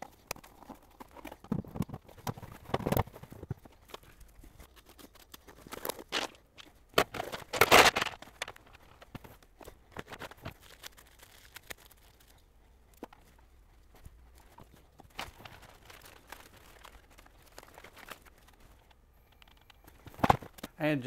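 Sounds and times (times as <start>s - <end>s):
cardboard and paper rustling: 0.0s - 20.7s
plastic pieces clicking and clattering: 4.8s - 12.4s.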